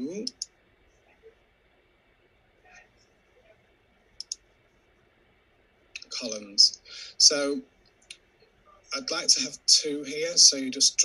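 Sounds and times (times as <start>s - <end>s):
computer mouse clicks: 0.2s - 0.5s, 4.2s - 4.4s.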